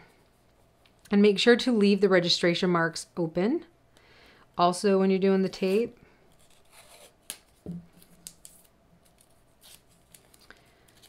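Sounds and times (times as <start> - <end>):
tape crackling and tearing: 6.3 - 11.0.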